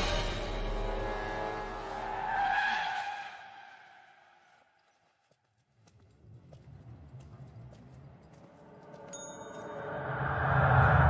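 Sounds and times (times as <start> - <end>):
soft footsteps: 4.6 - 9.7.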